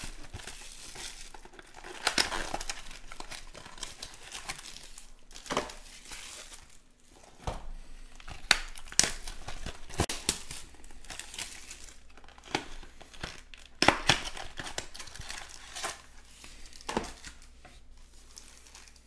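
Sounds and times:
plastic shrink-wrap crinkling: 0.0 - 7.2, 8.0 - 19.0.

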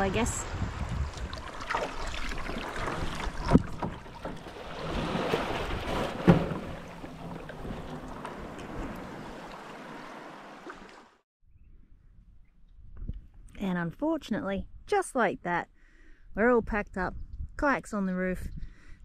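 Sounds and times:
wind on microphone: 0.0 - 10.1, 16.6 - 17.6, 18.3 - 19.0
water sloshing against a kayak: 0.8 - 11.2
sharp knocks on hull: 2.8 - 9.4.

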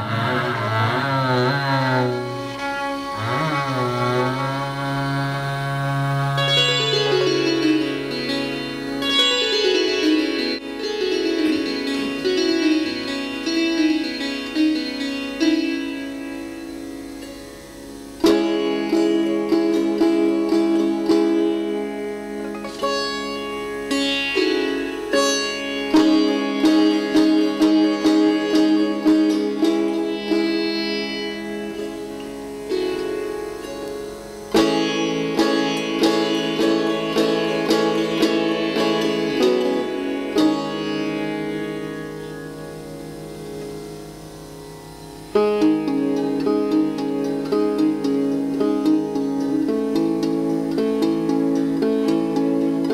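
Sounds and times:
sitar plucked melody: 0.0 - 52.9.

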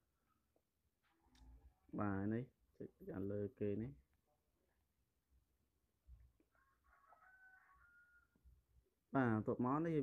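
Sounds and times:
distant rooster crowing: 6.4 - 8.5.

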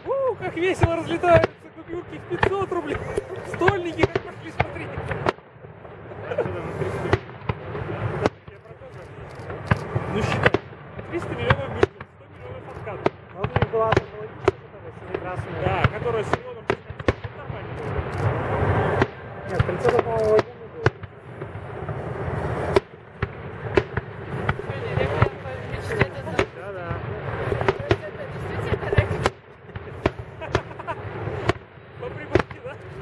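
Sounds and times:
firework shells bursting: 0.0 - 33.0.

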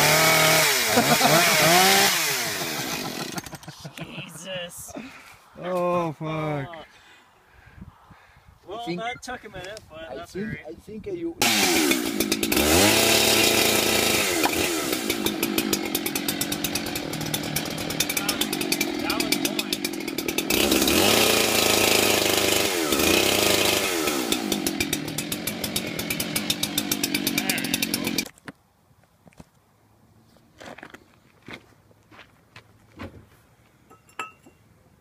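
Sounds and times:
chainsaw revving and idling: 0.0 - 3.7, 11.4 - 28.3.

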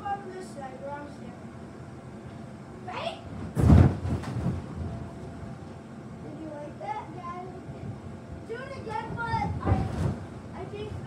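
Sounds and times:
thump on bounce house: 3.4 - 4.9, 9.2 - 10.3.

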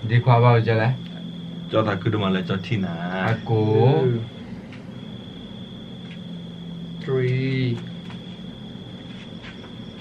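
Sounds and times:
high-pitched whine: 0.0 - 10.0
low hum: 0.0 - 10.0.

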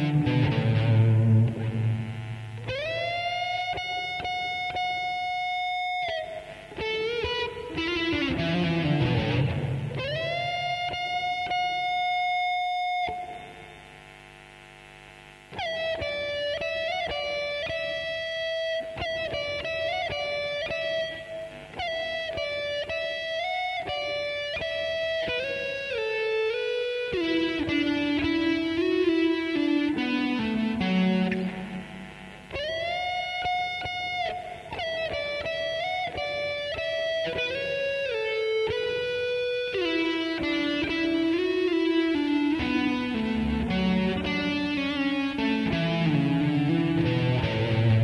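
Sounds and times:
electric guitar ballad melody: 0.0 - 14.0, 15.5 - 48.0.

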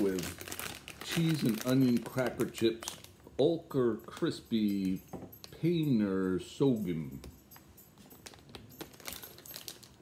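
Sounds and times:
plastic snack bag crinkling: 0.0 - 3.5, 8.2 - 10.0.

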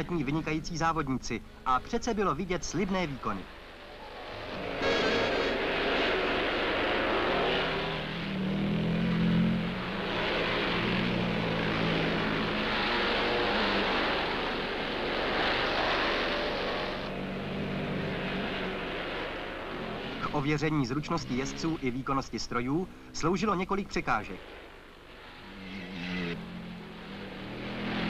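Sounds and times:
motorcycle engines revving: 0.0 - 28.0.

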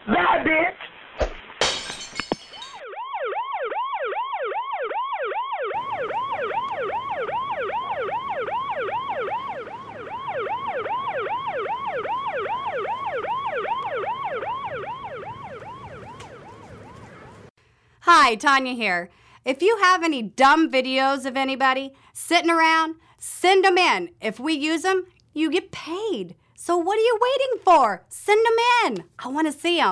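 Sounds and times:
police siren yelping: 2.8 - 17.5.

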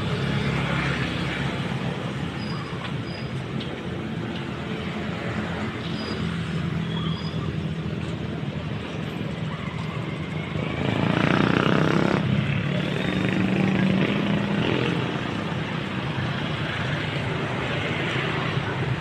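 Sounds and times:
motor traffic engine hum: 0.0 - 19.0.

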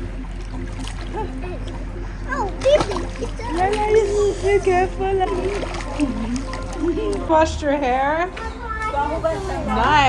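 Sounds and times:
water splashing in a pool: 0.0 - 9.1.

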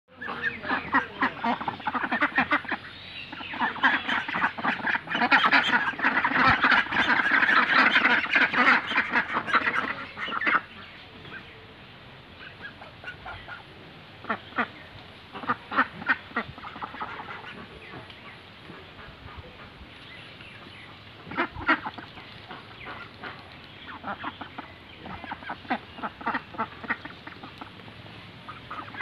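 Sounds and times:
ducks quacking: 0.1 - 11.5, 12.4 - 29.0.

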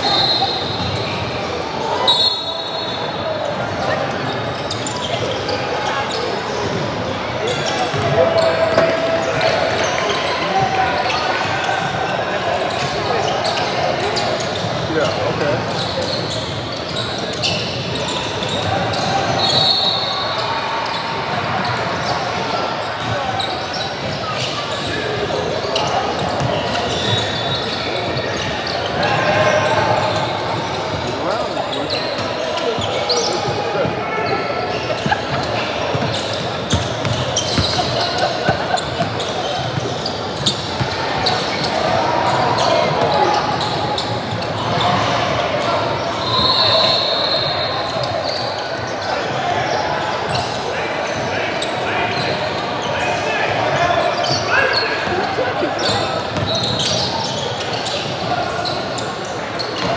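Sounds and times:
people talking and calling out: 0.0 - 59.9
sneakers squeaking: 0.0 - 59.9.

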